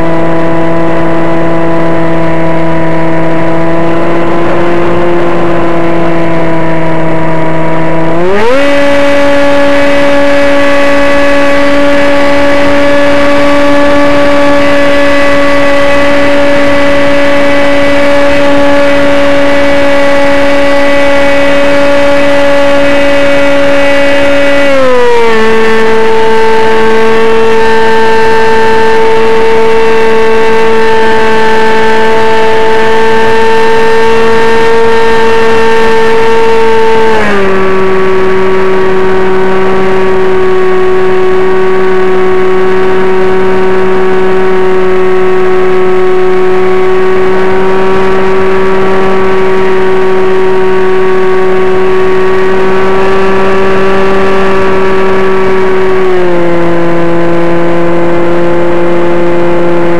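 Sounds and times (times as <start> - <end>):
model airplane motor whine: 0.0 - 59.9.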